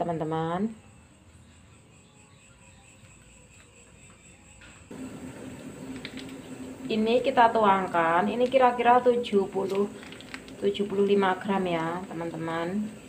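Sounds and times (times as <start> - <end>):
low steady hum: 0.0 - 13.0
plastic packet crinkling: 9.6 - 11.0.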